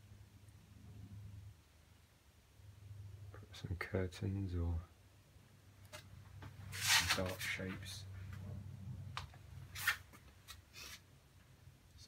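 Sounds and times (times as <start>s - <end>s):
low steady hum: 0.0s - 10.4s.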